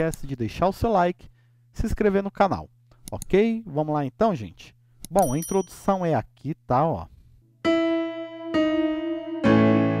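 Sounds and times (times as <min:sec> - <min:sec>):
electronic keyboard piano chords: 0:07.7 - 0:10.0.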